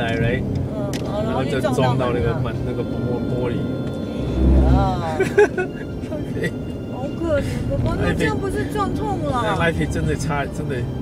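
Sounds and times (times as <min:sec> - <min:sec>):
low rumble: 0:00.0 - 0:09.3
road and engine noise in car: 0:00.0 - 0:11.0.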